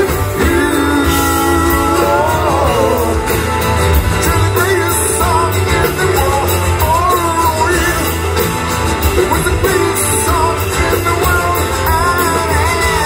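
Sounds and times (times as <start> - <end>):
person singing long notes: 0.0 - 3.4
rock band playing: 0.0 - 13.0.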